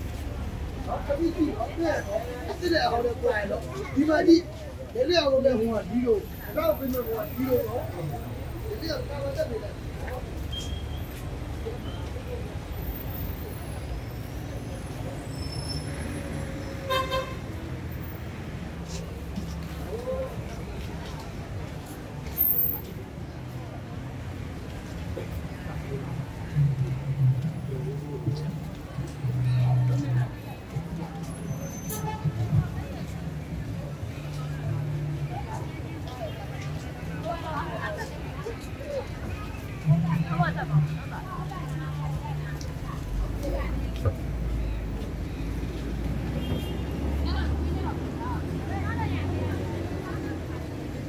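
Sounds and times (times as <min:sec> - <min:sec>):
passers-by talking: 0:00.0 - 0:51.0
street traffic rumble: 0:00.0 - 0:51.0
vehicle horn toot: 0:16.8 - 0:17.4, 0:46.4 - 0:47.0.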